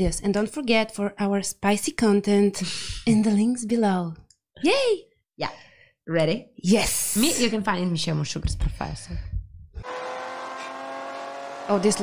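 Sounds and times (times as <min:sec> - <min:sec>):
race car engine: 0:09.8 - 0:12.0.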